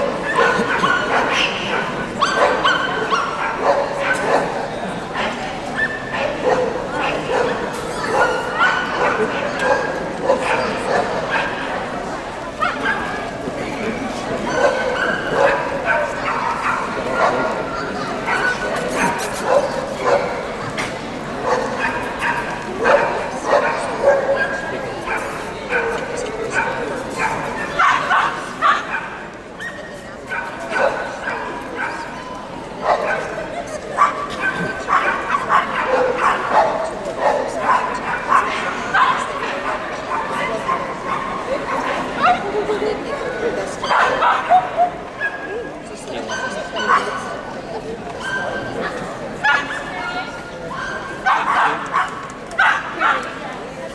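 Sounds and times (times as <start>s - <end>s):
dogs yapping and barking: 0.0s - 4.6s
people chattering: 0.0s - 53.9s.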